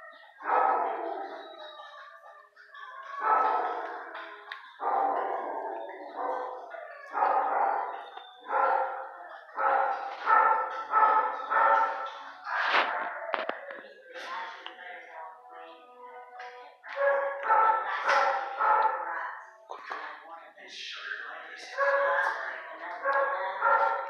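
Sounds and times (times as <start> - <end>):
dog barking with echo: 0.4 - 1.6, 3.1 - 13.2, 16.9 - 19.2, 23.0 - 24.0.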